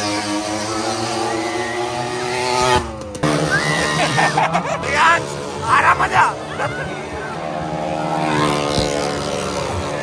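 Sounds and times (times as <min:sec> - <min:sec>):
motorcycle engine running: 0:00.0 - 0:10.0
voices: 0:03.4 - 0:10.0.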